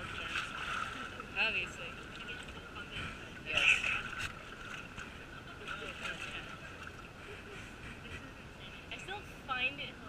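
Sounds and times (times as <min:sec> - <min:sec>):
group of people talking: 0:00.0 - 0:10.0
outdoor background hiss: 0:00.0 - 0:10.0.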